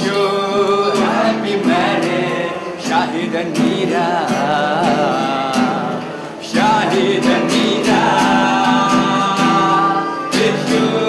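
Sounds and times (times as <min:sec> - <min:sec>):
strummed acoustic guitar: 0:00.0 - 0:11.0
voices singing together: 0:00.0 - 0:11.0.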